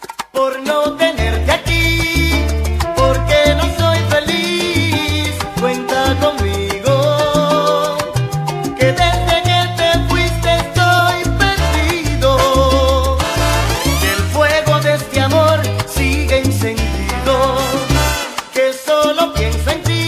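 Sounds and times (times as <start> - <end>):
salsa music: 0.0 - 20.0
heavy bass line: 1.2 - 18.2.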